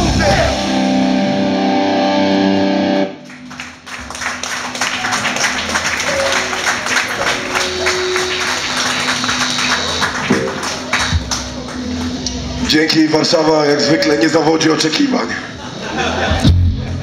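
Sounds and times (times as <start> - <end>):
loud punk song: 0.0 - 3.2
audience applauding: 3.2 - 12.2
amplifier hum: 5.6 - 17.0.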